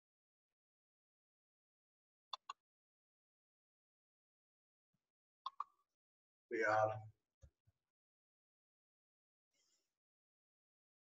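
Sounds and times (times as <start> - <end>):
short clicks: 5.5 - 5.7.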